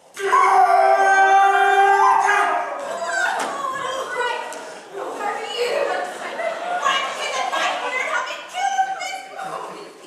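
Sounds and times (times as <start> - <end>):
person screaming: 0.2 - 2.8.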